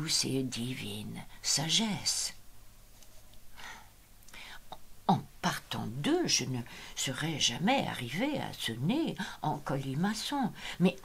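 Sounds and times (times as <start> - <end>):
woman breathing softly: 3.5 - 4.7, 6.7 - 7.0, 10.6 - 10.8.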